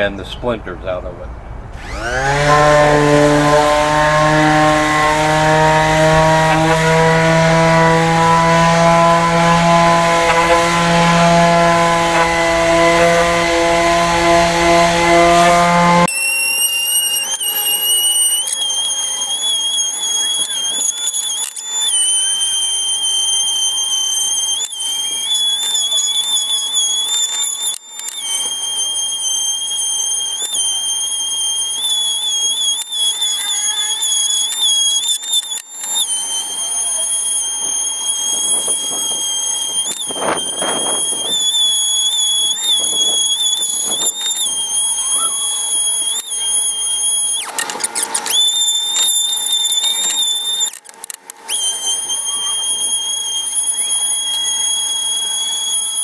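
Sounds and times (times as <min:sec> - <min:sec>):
high-pitched whine: 0:01.2 - 0:56.0
palm sander motor hum: 0:01.8 - 0:56.0.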